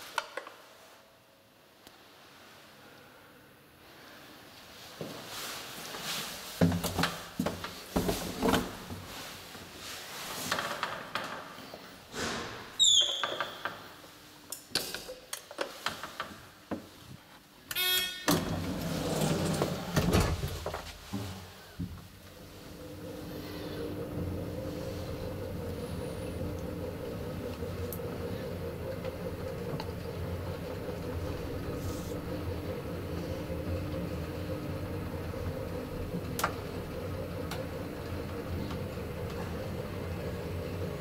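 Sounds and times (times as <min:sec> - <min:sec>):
short buzzing tone: 0:17.7 - 0:18.4
elevator machinery humming: 0:17.7 - 0:41.0.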